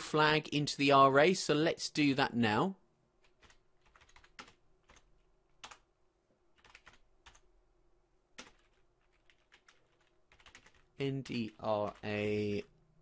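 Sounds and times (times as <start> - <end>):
faint keyboard typing: 3.2 - 5.9, 6.5 - 7.5, 8.3 - 12.7.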